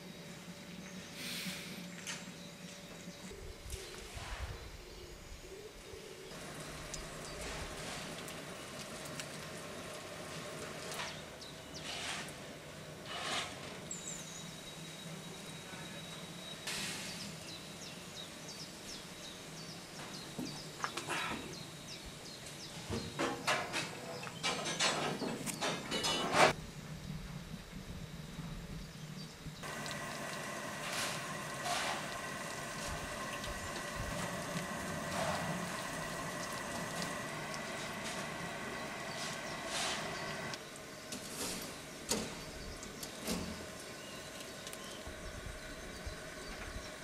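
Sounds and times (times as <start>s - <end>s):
steam hissing from locomotive: 1.1s - 1.9s, 6.4s - 14.0s, 14.6s - 17.8s, 29.6s - 42.6s
water trickling: 6.4s - 11.0s, 29.6s - 40.9s.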